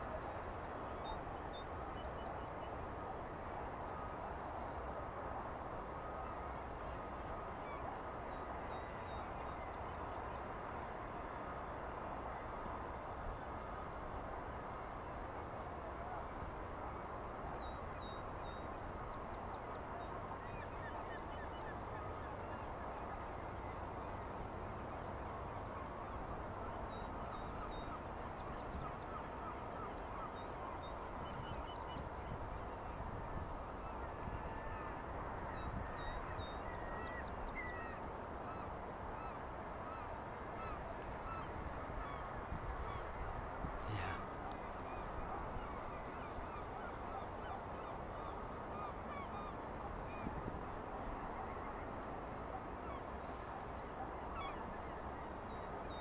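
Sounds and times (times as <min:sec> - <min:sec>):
distant bird calls: 0:20.5 - 0:50.3.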